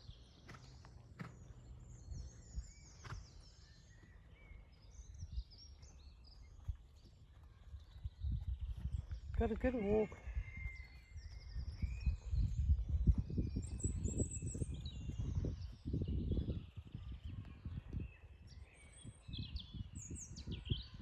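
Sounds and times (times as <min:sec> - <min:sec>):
birds singing and chirping: 0:00.0 - 0:21.0.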